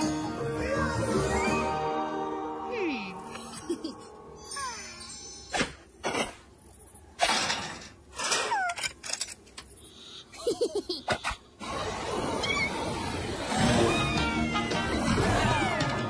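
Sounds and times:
squeaky character vocal noises: 0:04.4 - 0:05.7, 0:08.3 - 0:09.0, 0:11.1 - 0:15.9.

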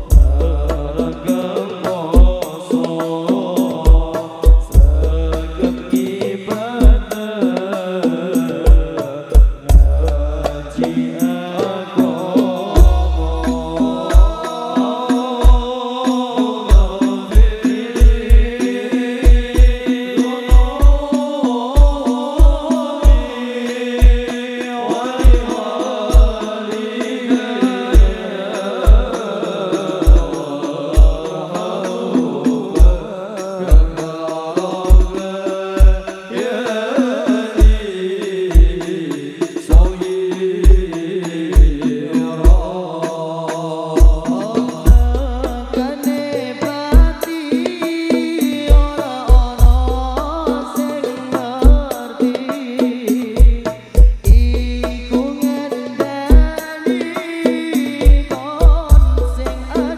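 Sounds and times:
bass drum thumps: 0:00.0 - 0:01.1, 0:03.9 - 0:05.6, 0:09.4 - 0:10.7, 0:12.8 - 0:14.3, 0:44.9 - 0:45.9, 0:48.7 - 0:50.5, 0:53.4 - 0:55.3, 0:58.1 - 0:59.8
hand drums: 0:00.0 - 0:59.9
person singing devotional song: 0:00.0 - 0:59.9.

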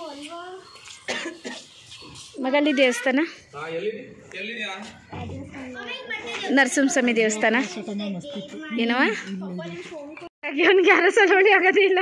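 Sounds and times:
person coughing: 0:01.1 - 0:01.7.

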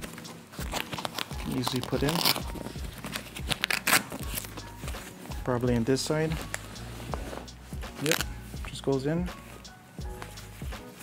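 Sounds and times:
fabric rustling and ripping: 0:00.0 - 0:05.3, 0:06.4 - 0:08.3.

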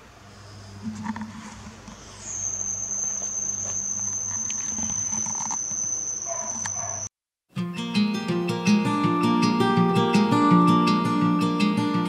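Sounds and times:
insect trilling: 0:00.0 - 0:07.1.

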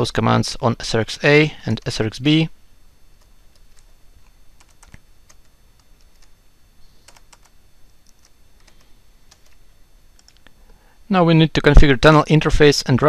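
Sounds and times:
computer keyboard typing clicks: 0:04.6 - 0:06.3, 0:07.0 - 0:09.6, 0:10.2 - 0:10.5.

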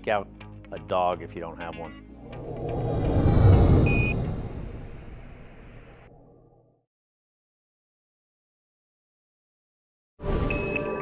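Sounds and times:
deep whoosh: 0:02.2 - 0:06.2.

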